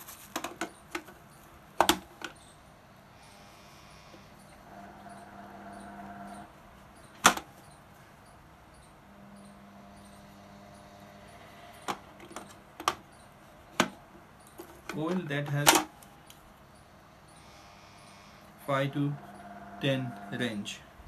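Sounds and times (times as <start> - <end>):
sharp clicks and knocks: 0.3 - 2.4, 7.1 - 7.8, 11.8 - 16.4
faint steady hum: 0.3 - 21.0.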